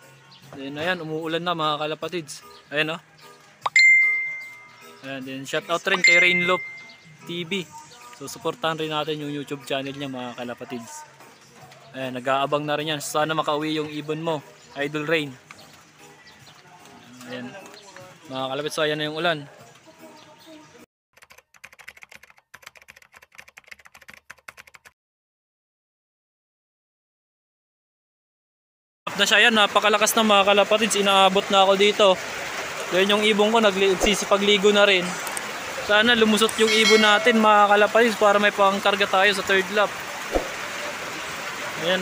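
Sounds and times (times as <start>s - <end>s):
keyboard typing clicks: 21.2s - 24.9s
heavy rain falling: 29.1s - 42.0s
brief thump: 40.3s - 40.6s.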